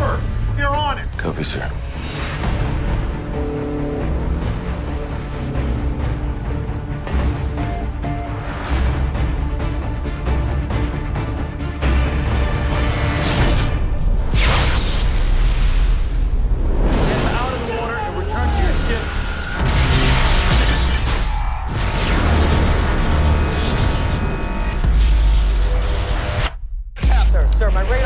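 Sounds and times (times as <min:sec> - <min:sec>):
trailer music: 0:00.0 - 0:28.0.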